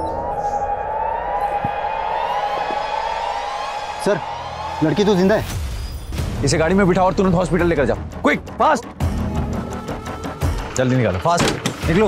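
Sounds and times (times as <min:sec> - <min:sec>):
police siren: 0:00.0 - 0:05.2.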